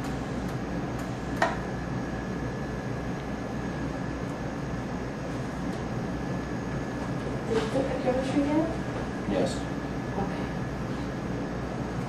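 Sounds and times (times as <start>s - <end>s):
equipment and ventilation hum: 0.0s - 12.0s.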